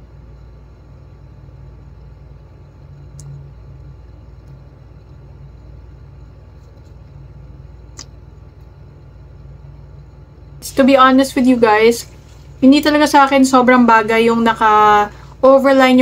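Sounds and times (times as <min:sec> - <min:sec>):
low background hum: 0:00.0 - 0:16.0.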